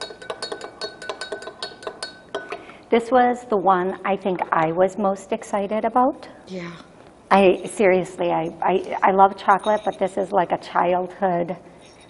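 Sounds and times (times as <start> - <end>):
spoon clinking against glass: 0.0 - 2.7, 9.5 - 10.1, 11.8 - 12.0.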